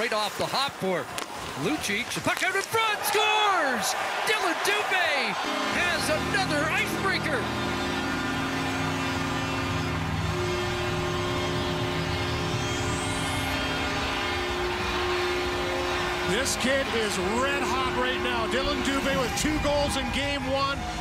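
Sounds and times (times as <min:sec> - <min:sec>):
arena crowd noise: 0:00.0 - 0:21.0
arena goal horn: 0:04.4 - 0:21.0.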